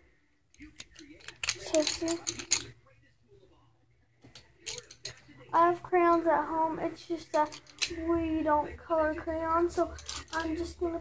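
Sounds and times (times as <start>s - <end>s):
wooden pencils clicking and rattling: 0.5s - 2.7s, 4.3s - 5.2s, 7.1s - 8.2s, 9.5s - 11.0s.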